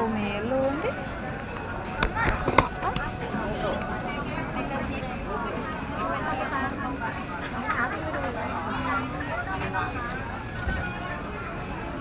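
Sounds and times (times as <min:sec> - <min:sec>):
busy market background: 0:00.0 - 0:12.0.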